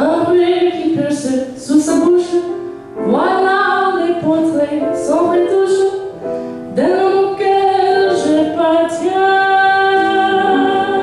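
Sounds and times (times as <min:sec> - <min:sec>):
instrumental accompaniment: 0:00.0 - 0:11.0
woman singing jazz: 0:00.0 - 0:11.0.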